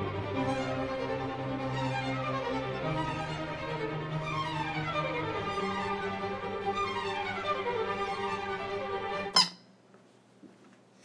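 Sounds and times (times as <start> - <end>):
rubber chicken toy squeak: 9.4 - 9.6.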